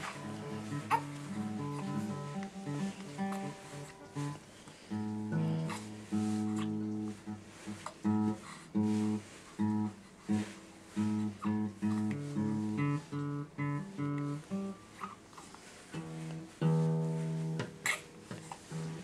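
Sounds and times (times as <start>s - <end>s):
acoustic guitar picking: 0.0s - 15.2s, 15.9s - 19.0s.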